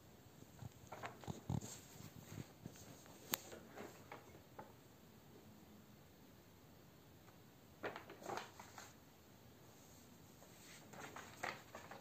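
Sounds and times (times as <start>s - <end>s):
paper rustling: 0.8s - 4.4s, 7.8s - 9.0s, 10.3s - 12.0s.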